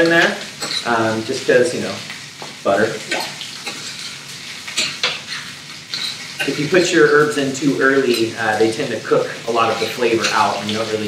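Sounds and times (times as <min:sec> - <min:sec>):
spoon scraping pan: 0:00.0 - 0:02.1, 0:03.0 - 0:11.0
frying sizzle: 0:00.0 - 0:11.0
metal spoon stirring in skillet: 0:00.0 - 0:11.0.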